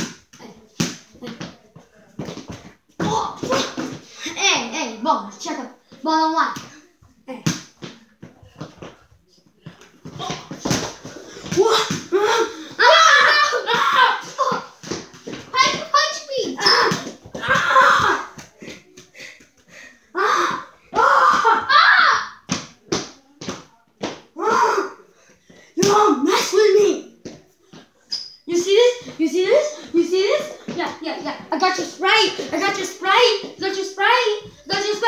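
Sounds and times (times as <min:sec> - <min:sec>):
ball bouncing: 0:02.2 - 0:04.0, 0:09.6 - 0:12.2, 0:13.7 - 0:19.0
children shouting and chattering: 0:10.0 - 0:22.5, 0:24.3 - 0:25.2.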